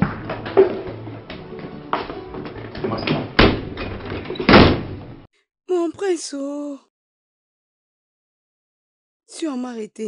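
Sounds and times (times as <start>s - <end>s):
person speaking: 5.7s - 6.9s.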